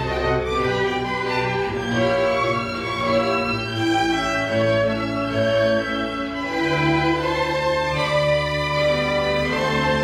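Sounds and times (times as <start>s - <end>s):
string orchestra bowed chords: 0.0s - 10.0s.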